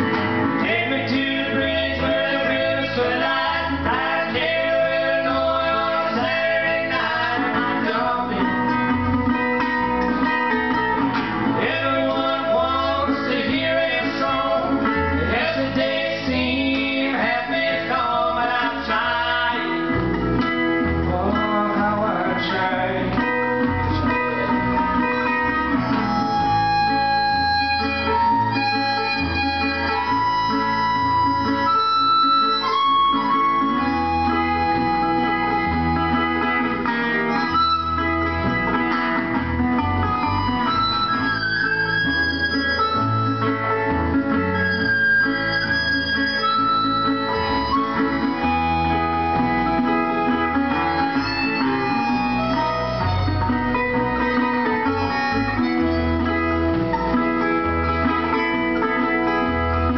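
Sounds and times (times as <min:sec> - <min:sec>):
harmonica melody: 0:00.0 - 0:59.9
strummed acoustic guitar: 0:00.0 - 0:59.9.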